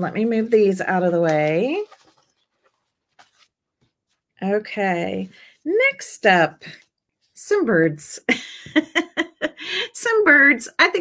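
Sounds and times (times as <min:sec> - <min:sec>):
paper napkins rustling: 0:00.0 - 0:06.0.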